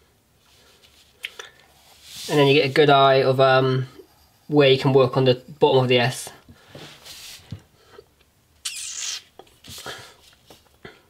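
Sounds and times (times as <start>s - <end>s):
hand scraping paper: 1.8s - 2.8s.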